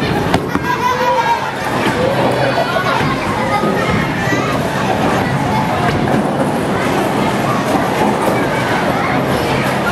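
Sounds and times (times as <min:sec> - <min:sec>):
bowling balls rolling: 0:00.0 - 0:09.9.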